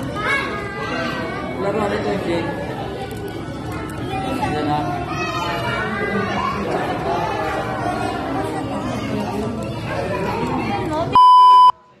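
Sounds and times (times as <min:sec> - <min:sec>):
people chattering: 0:00.0 - 0:12.0
loud test-tone beep: 0:11.2 - 0:11.8.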